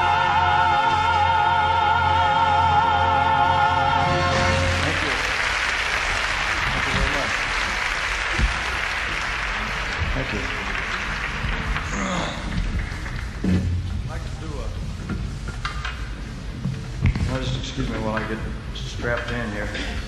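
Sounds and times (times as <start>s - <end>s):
audience applauding: 4.2s - 13.4s.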